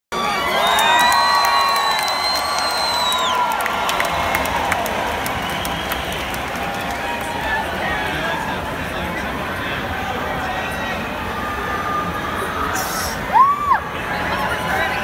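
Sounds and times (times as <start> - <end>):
crowd cheering: 0.1 - 15.0
loud long whoops: 0.2 - 4.0, 13.3 - 13.9
scattered clapping: 0.6 - 7.8.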